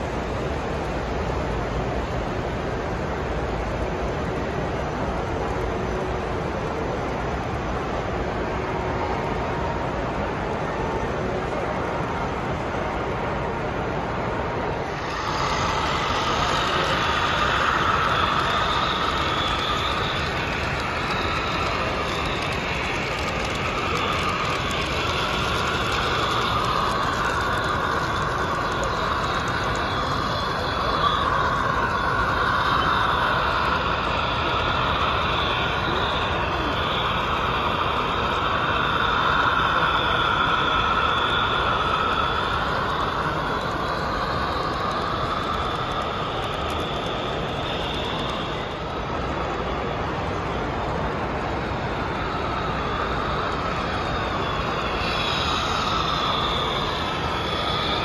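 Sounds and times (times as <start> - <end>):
model train motor drone: 0.0 - 58.0
wavering higher tones: 14.7 - 49.6.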